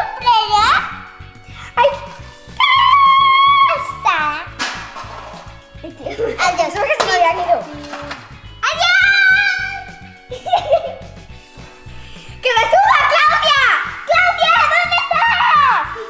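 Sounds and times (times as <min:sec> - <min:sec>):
background music with beat: 0:00.0 - 0:16.0
girls squealing and laughing: 0:02.6 - 0:04.0.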